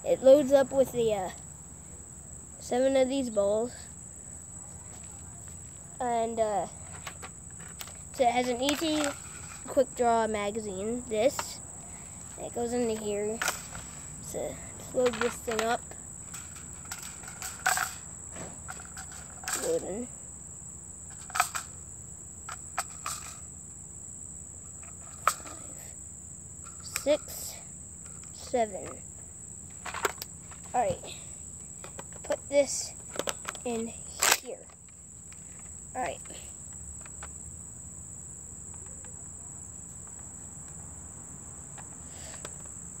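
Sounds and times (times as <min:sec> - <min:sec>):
insects chirring: 0:00.0 - 0:43.0
plastic toy blaster clicks: 0:34.2 - 0:34.5.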